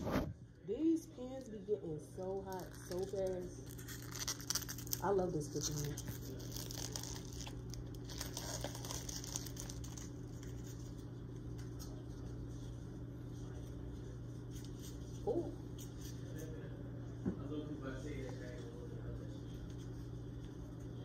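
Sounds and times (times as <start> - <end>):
food crackling and crinkling: 0.0 - 13.6
steady low hum: 0.0 - 21.0.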